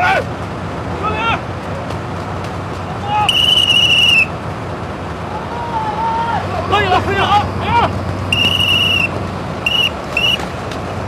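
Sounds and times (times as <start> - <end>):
heavy tractor engines running: 0.0 - 11.0
steady whistle blast: 3.2 - 4.3, 8.3 - 10.5.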